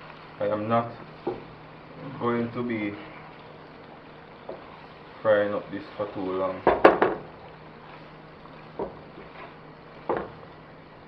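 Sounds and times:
food sizzling in a wok: 0:00.0 - 0:11.0
plastic spatula knocking a pan: 0:06.7 - 0:07.3, 0:08.8 - 0:09.1, 0:10.0 - 0:10.4.

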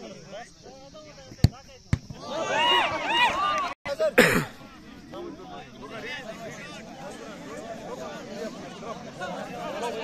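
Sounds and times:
people shouting excitedly: 0:02.1 - 0:03.8.

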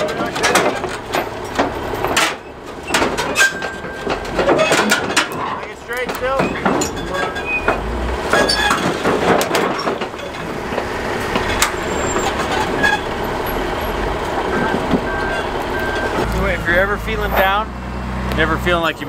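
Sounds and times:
people's voices: 0:00.0 - 0:01.2, 0:04.3 - 0:07.8, 0:16.2 - 0:19.0
sharp metal clanks: 0:00.0 - 0:13.0
heavy diesel engine running: 0:00.0 - 0:19.0.

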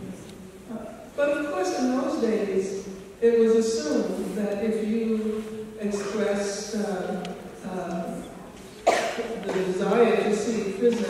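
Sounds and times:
person speaking into a microphone: 0:00.0 - 0:11.0
sharp cough: 0:05.9 - 0:06.2, 0:08.8 - 0:09.8.

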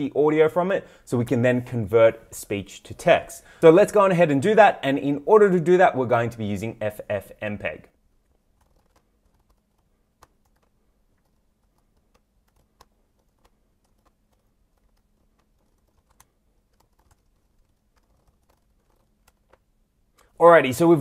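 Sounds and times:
computer keyboard typing: 0:08.2 - 0:20.3.

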